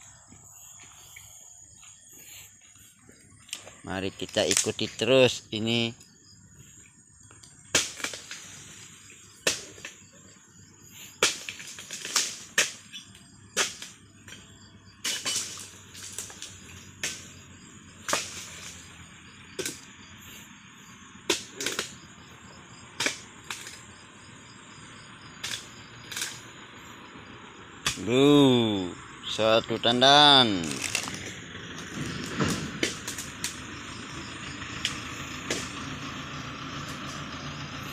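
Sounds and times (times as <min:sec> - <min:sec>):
insects chirping: 0:00.0 - 0:37.9
chisel blade chopping palm stalks: 0:07.7 - 0:08.6, 0:09.4 - 0:10.0, 0:11.1 - 0:14.4, 0:15.0 - 0:17.3, 0:18.0 - 0:18.8, 0:19.6 - 0:19.9, 0:21.2 - 0:22.0, 0:23.0 - 0:23.8, 0:25.4 - 0:26.4, 0:27.8 - 0:28.2, 0:30.6 - 0:33.6, 0:35.4 - 0:35.9.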